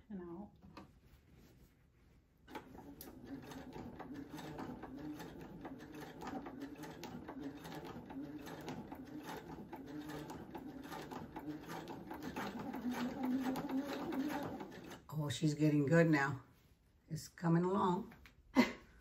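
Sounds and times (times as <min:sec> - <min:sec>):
sewing machine stitching: 0:02.5 - 0:15.2.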